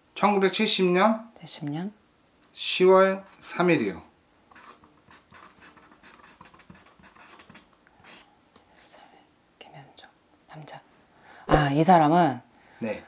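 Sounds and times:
pen scratching on paper: 0:04.6 - 0:08.2.

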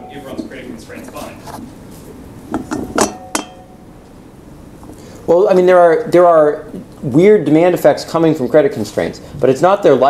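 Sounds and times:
metal bottle clinking: 0:02.6 - 0:03.8.

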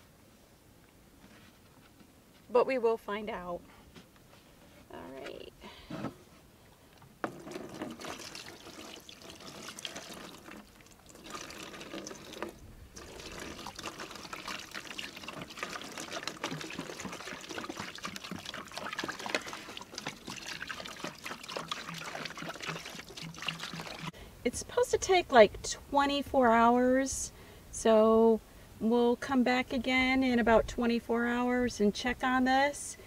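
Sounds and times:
liquid pouring and splashing: 0:07.2 - 0:24.2.

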